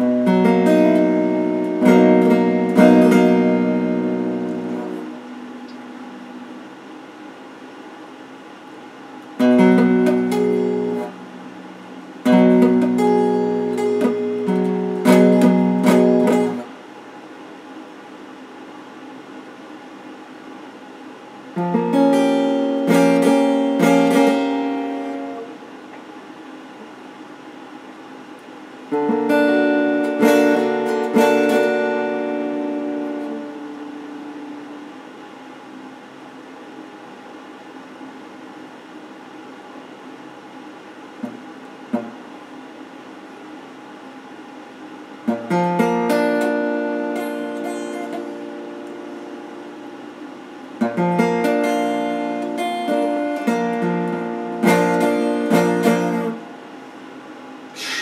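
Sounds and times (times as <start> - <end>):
clean electric guitar chords: 0.0 - 7.0, 9.2 - 16.7, 21.6 - 25.6, 28.9 - 35.1, 45.3 - 56.6.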